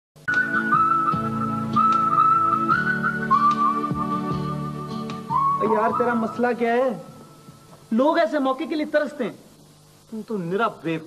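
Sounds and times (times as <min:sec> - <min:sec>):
man talking: 0:05.6 - 0:07.1, 0:07.9 - 0:09.5, 0:10.1 - 0:11.0.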